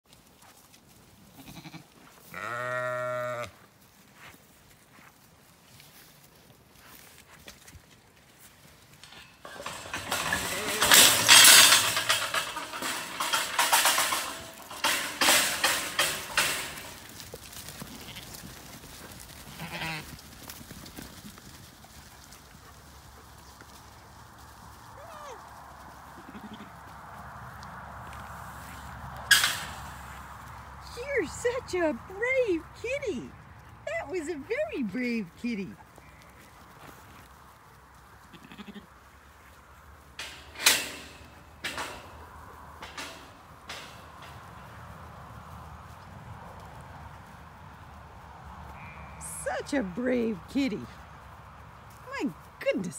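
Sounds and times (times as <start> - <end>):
sheep bleating: 1.4 - 3.6, 19.5 - 20.1, 38.3 - 38.9, 48.7 - 49.3
flock trampling hooves: 3.5 - 52.9.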